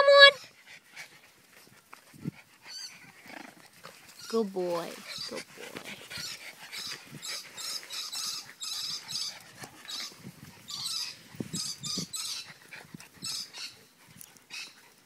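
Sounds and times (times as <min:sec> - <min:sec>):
dog panting: 0:00.4 - 0:15.0.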